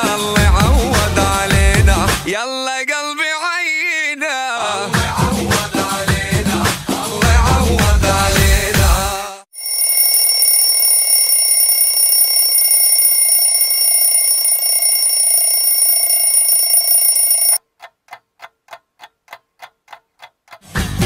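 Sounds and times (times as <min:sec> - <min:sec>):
steady high ringing: 0:09.6 - 0:17.6
regular ticking: 0:09.6 - 0:20.6.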